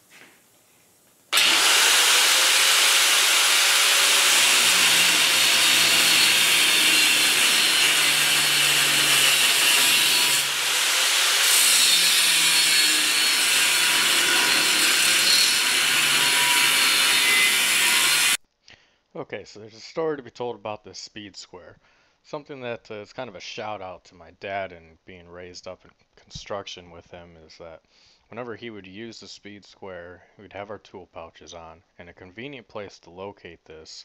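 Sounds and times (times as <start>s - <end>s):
angle grinder cutting steel tube: 1.3s - 18.4s.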